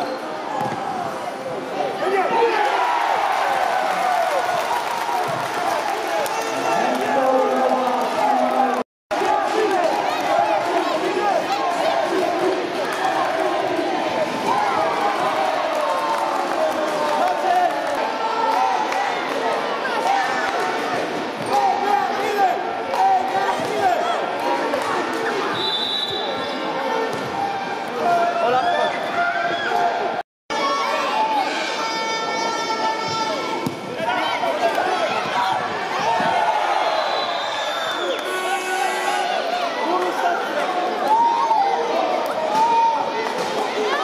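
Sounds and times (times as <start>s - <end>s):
crowd shouting and cheering indoors: 0.0s - 44.0s
many voices echoing in a hall: 0.0s - 44.0s.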